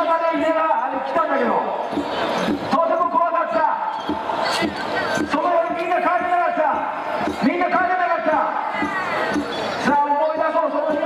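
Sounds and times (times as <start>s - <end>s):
drum thuds: 1.8s - 2.8s, 3.9s - 7.8s, 8.7s - 9.8s.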